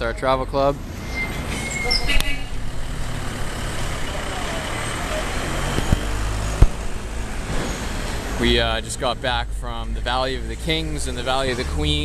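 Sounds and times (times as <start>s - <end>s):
vehicle engine rumbling: 0.0s - 12.0s
faint voices: 3.9s - 6.8s.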